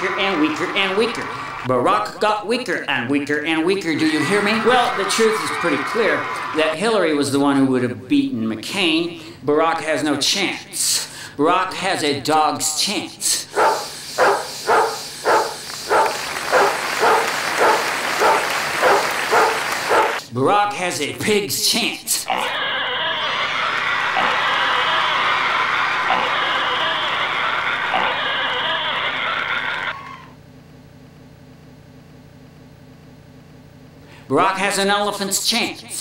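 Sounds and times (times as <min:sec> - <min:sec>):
low room hum: 0:00.0 - 0:36.0
dog barking: 0:13.6 - 0:20.2
pig sound effect: 0:22.3 - 0:22.8, 0:24.2 - 0:24.4, 0:26.1 - 0:26.5, 0:27.9 - 0:28.4.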